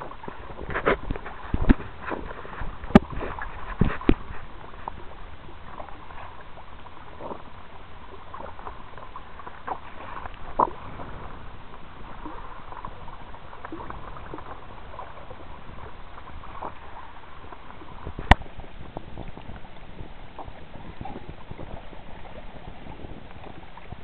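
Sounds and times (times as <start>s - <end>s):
water rushing along a kayak hull: 0.0s - 24.0s.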